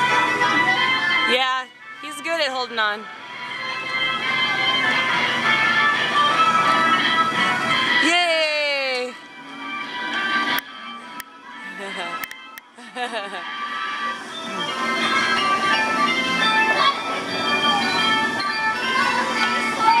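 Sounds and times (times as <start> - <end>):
merry-go-round music: 0.0 - 20.0
person laughing: 11.7 - 12.2, 12.8 - 13.5.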